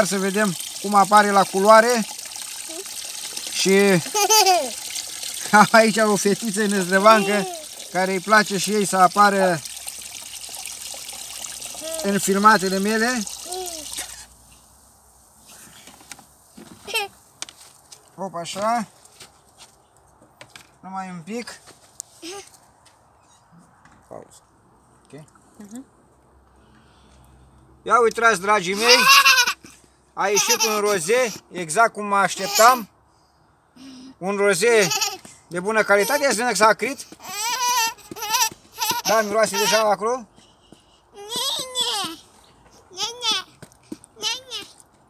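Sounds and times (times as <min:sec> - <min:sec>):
girl's high-pitched voice: 0:02.7 - 0:02.9, 0:04.3 - 0:04.8, 0:07.1 - 0:07.7, 0:11.8 - 0:12.0, 0:13.4 - 0:14.0, 0:16.8 - 0:17.1, 0:41.1 - 0:42.2, 0:42.9 - 0:43.5, 0:44.2 - 0:44.8
girl squealing laughter: 0:04.1 - 0:04.8, 0:07.2 - 0:07.6, 0:28.8 - 0:29.6.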